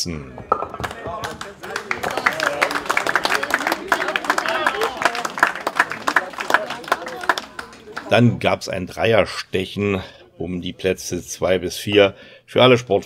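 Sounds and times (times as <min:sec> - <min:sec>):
people talking: 0:00.0 - 0:13.0
spectators clapping: 0:00.4 - 0:08.2.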